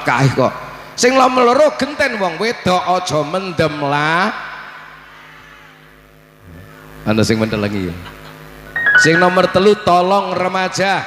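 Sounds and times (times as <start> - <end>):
held musical tone: 8.8 - 10.4.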